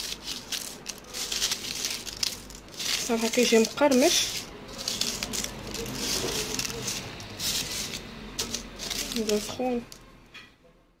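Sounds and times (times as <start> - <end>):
wafer sheets crackling and crunching: 0.0 - 10.0.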